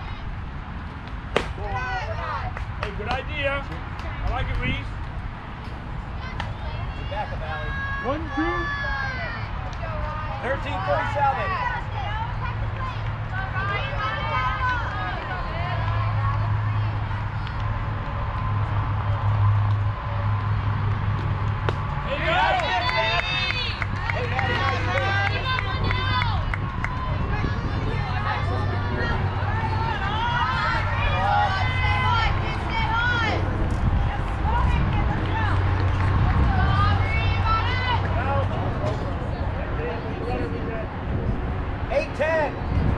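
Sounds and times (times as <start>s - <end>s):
crowd talking and calling out: 0.0s - 42.9s.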